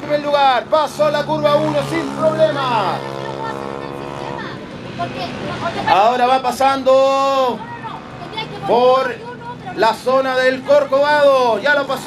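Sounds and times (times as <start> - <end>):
motorcycle engine passing: 0.0 - 6.4.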